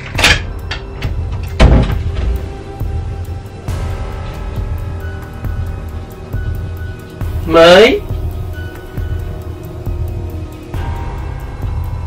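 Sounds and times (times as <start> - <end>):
door closing thump: 1.0 - 2.4.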